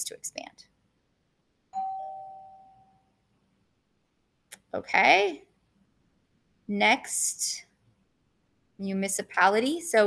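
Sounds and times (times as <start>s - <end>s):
two-tone electronic chime: 1.8s - 3.1s.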